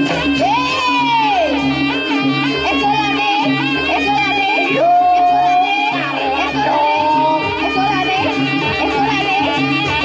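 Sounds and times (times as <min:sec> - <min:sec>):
long held high melody notes: 0:00.0 - 0:10.0.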